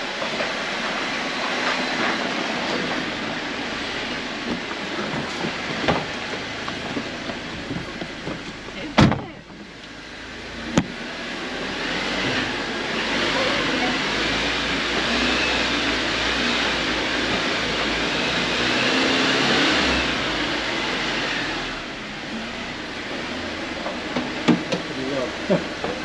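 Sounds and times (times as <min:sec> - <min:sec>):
engine and tyres on gravel: 0:00.0 - 0:26.0.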